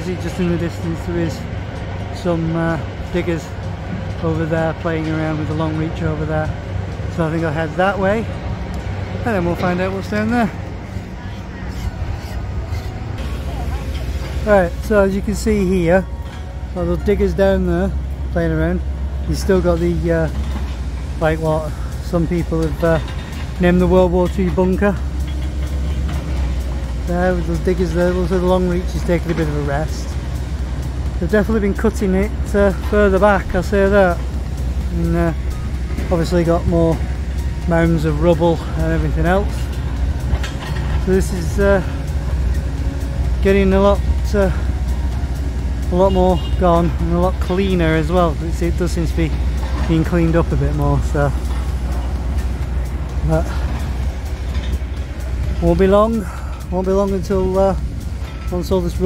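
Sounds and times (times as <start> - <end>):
low outdoor rumble: 0.0 - 59.0.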